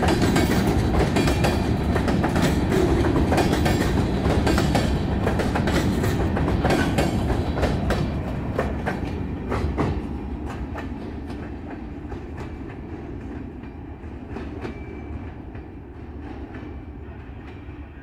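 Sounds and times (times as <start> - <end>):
wheels clicking over rail joints: 0.0 - 16.7
freight train rumbling past: 0.0 - 18.0.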